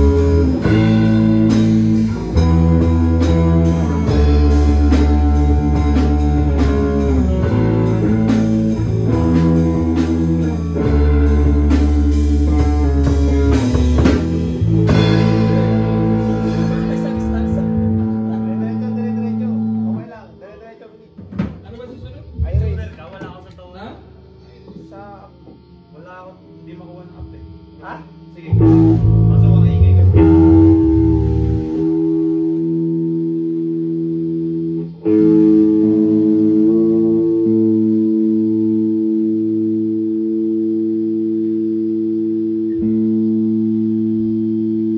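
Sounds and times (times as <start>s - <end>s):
electric guitars and bass chord: 0.0s - 44.9s
voices talking: 14.9s - 30.4s.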